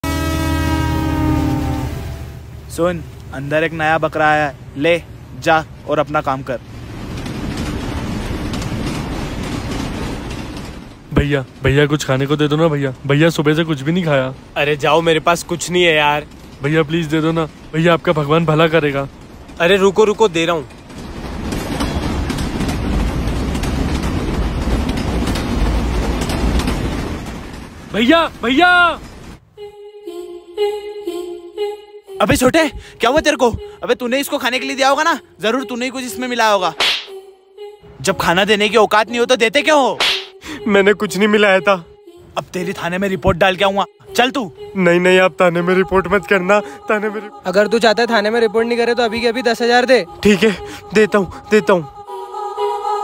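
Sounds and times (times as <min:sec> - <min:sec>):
train horn blast: 0:00.0 - 0:02.6
train rumbling: 0:00.0 - 0:53.0
wheels clattering over rail joints: 0:02.4 - 0:29.4.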